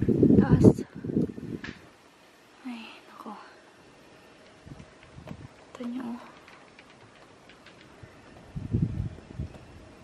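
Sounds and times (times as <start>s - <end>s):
woman whispering: 2.6s - 3.6s, 5.8s - 6.4s.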